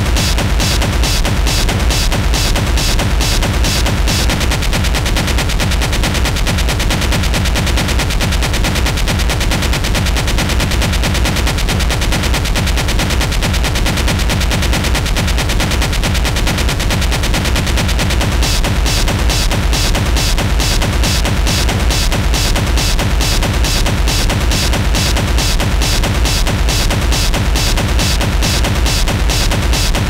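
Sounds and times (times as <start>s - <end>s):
distorted percussive hits: 0.0s - 30.0s
heavy bass: 0.0s - 30.0s
industrial techno music: 0.0s - 30.0s.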